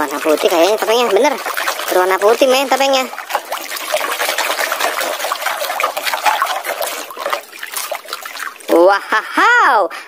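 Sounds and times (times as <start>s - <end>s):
water sloshing in plastic tub: 0.0s - 9.3s.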